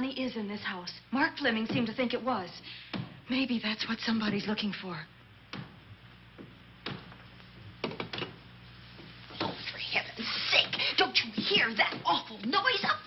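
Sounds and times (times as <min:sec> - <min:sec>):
woman speaking: 0:00.0 - 0:02.6, 0:03.3 - 0:05.1, 0:09.6 - 0:13.0
low steady hum: 0:00.0 - 0:13.0.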